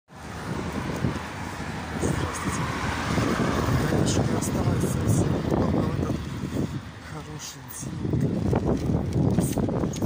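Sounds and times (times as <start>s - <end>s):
road traffic: 0.1s - 10.0s
wind rumbling on microphone: 0.1s - 10.0s.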